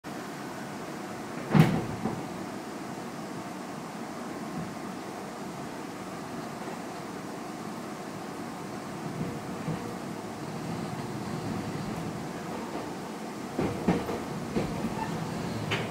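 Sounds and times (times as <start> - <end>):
train car hum: 0.0 - 15.9.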